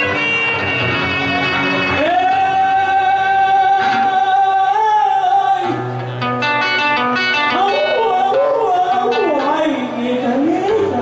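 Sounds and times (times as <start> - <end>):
person singing: 0.0 - 11.0.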